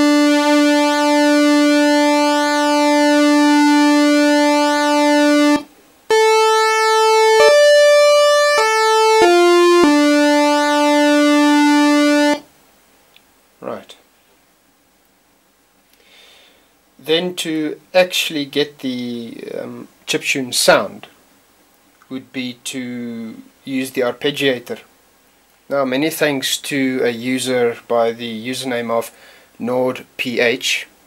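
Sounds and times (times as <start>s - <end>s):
buzzy synthesizer tone: 0.0s - 12.4s.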